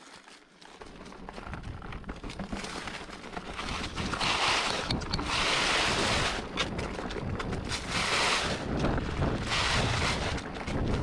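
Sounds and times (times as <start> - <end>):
bike clicks and rattles: 0.2 - 5.3, 6.4 - 7.8
bike tyres and wind rushing: 0.8 - 11.0.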